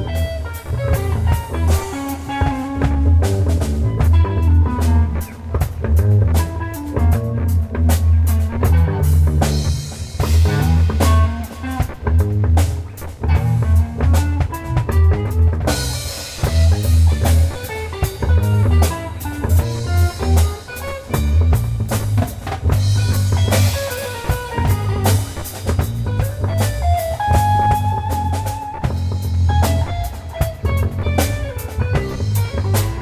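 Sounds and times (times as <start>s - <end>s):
bass line: 0.0s - 33.0s
drum kit with cymbals: 0.0s - 33.0s
guitar: 0.0s - 33.0s.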